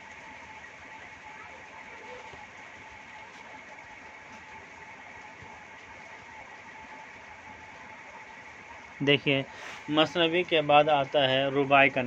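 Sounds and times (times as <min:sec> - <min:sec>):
faint even hum: 0:00.0 - 0:12.0.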